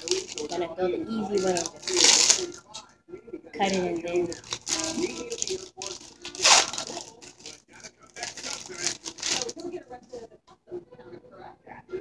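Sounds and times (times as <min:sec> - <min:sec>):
plastic packaging tearing: 0:00.0 - 0:00.6, 0:01.3 - 0:02.8, 0:03.6 - 0:09.7
plastic crinkling: 0:00.0 - 0:02.8, 0:03.6 - 0:09.8.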